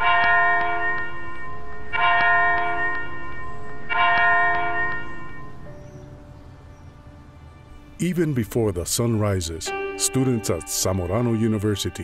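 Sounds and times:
bell ringing: 0.0s - 5.7s.

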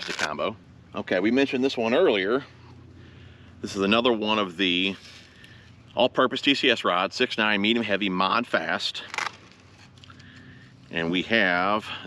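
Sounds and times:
low steady background noise: 0.0s - 12.0s.

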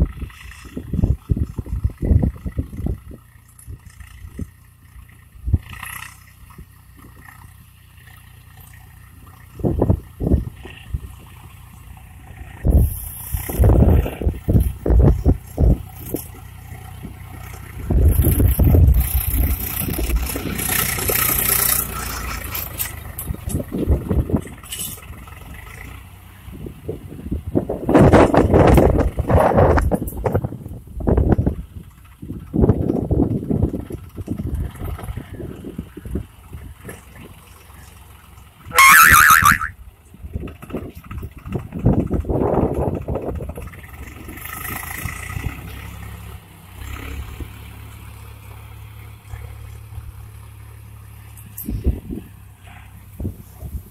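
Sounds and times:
tractor diesel engine under load: 0.0s - 53.9s
harsh high-pitched sound: 38.7s - 39.7s.

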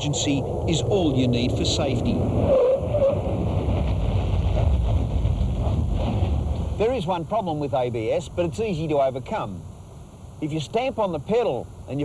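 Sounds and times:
wind buffeting microphone: 0.0s - 7.0s.

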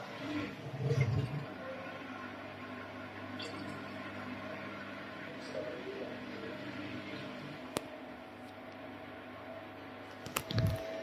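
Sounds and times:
washing machine running: 0.0s - 11.0s.

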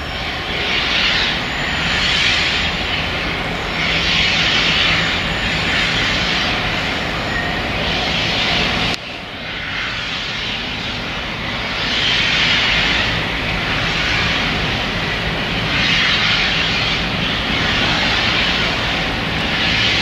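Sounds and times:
diesel locomotive engine running hard: 0.0s - 20.0s
hiss: 9.5s - 20.0s.

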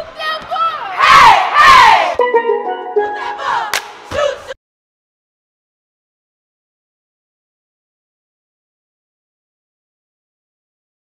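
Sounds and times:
steady musical notes: 2.2s - 4.1s.

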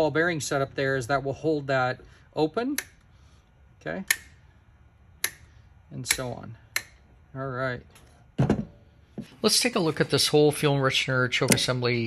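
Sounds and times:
metallic lever clicks: 6.0s - 7.0s, 11.4s - 11.8s.

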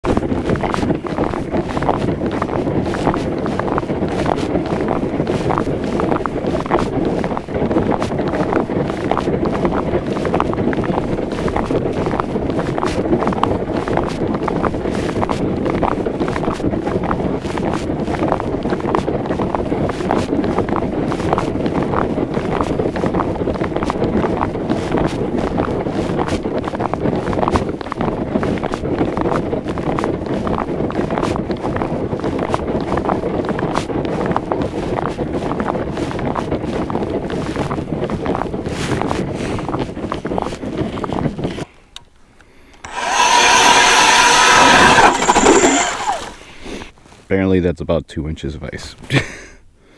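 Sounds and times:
wind buffeting microphone: 0.0s - 47.3s
boots walking on ice: 42.8s - 46.9s.

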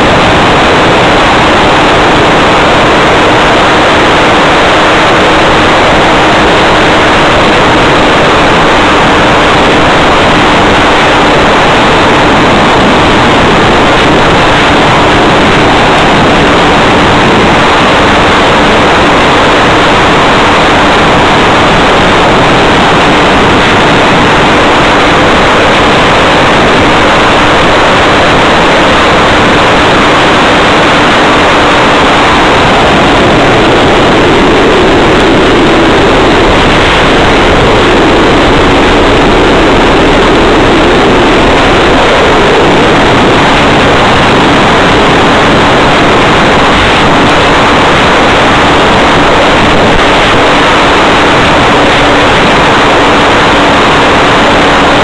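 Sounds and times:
faint steady hum: 0.0s - 55.0s
loud steady hiss: 0.0s - 55.0s.

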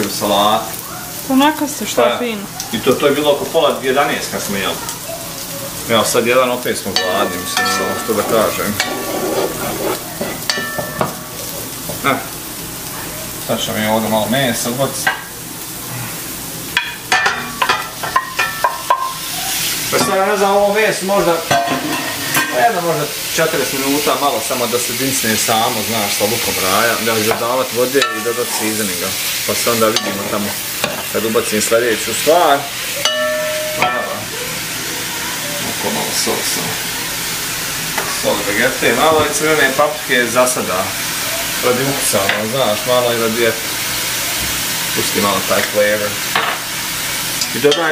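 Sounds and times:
onions sizzling in a pot: 0.0s - 47.9s.

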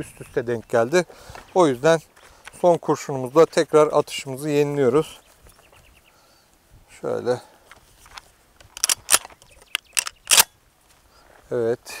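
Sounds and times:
shotgun loading clicks: 8.0s - 10.5s.

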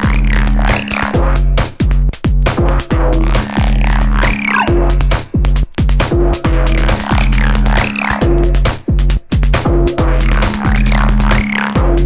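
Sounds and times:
deep sustained bass line: 0.0s - 12.0s
drum machine beat: 0.0s - 12.0s
synth tone sweeping: 6.4s - 8.7s.

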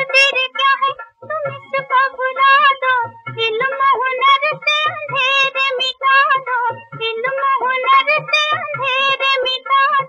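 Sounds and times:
child singing: 0.0s - 10.0s
musical accompaniment: 0.0s - 10.0s.

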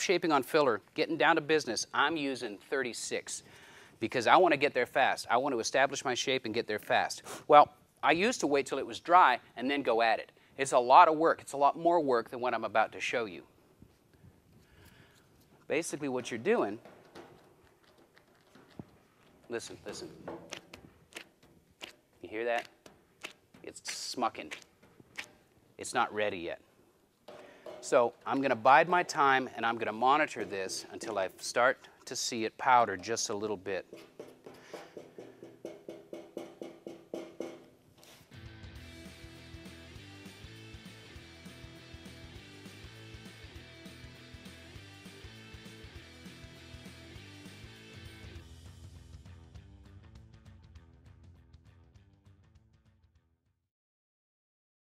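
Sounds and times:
rock music with guitar: 38.3s - 52.0s.

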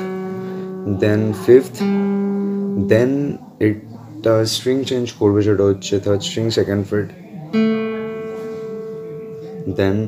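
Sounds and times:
acoustic guitar note plucked: 0.0s - 3.8s, 4.4s - 10.0s.

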